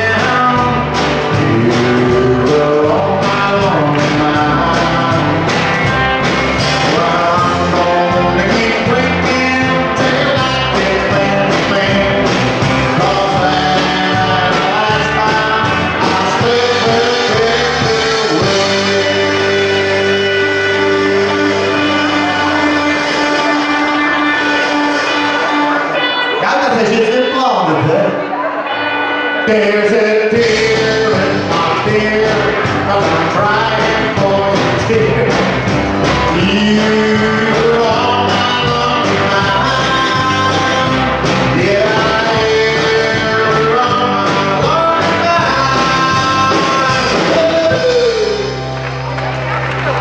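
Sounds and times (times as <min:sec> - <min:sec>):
man singing: 0:00.0 - 0:28.6, 0:29.2 - 0:48.7
acoustic and electric guitars: 0:00.0 - 0:50.0
bass guitar: 0:00.0 - 0:50.0
country band sustained chord: 0:00.0 - 0:50.0
drums: 0:00.0 - 0:50.0.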